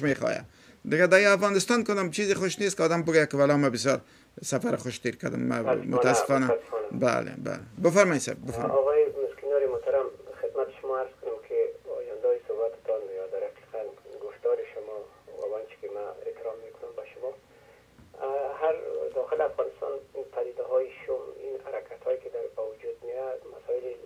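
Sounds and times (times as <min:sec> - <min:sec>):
person speaking over telephone: 0:05.6 - 0:17.4, 0:18.2 - 0:24.0.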